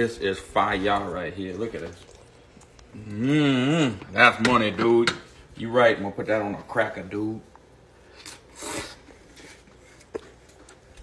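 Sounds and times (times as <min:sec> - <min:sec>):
person chewing cracker: 0:01.6 - 0:04.1.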